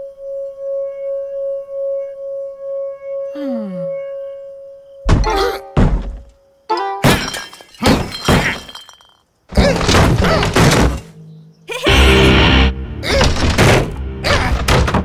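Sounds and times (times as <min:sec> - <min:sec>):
cartoon thuds: 0:05.0 - 0:06.3, 0:09.5 - 0:11.2, 0:13.0 - 0:15.0
background music: 0:06.5 - 0:07.4, 0:09.6 - 0:15.0
crashing clatters: 0:07.0 - 0:11.2.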